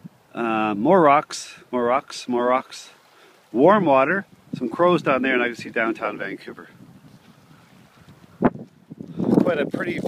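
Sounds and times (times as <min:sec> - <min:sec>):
wind noise on microphone: 0:03.6 - 0:10.0.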